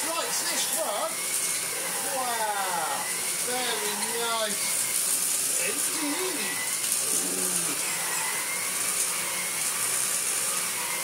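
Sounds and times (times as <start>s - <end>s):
vacuum cleaner on a rug: 0.0s - 11.0s.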